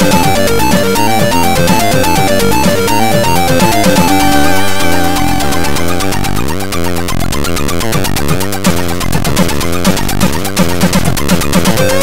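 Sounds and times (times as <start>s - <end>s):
chiptune square wave melody: 0.0s - 7.8s, 11.7s - 12.0s
chiptune bass pulse: 0.0s - 8.4s, 11.7s - 12.0s.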